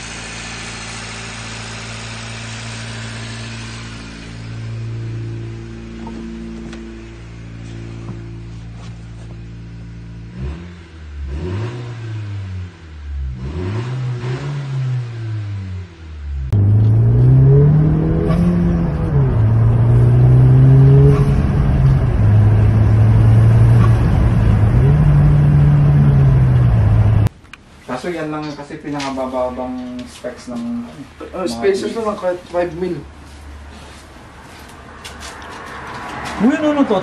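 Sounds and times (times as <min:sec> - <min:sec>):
car engine revving: 0:00.0 - 0:27.3.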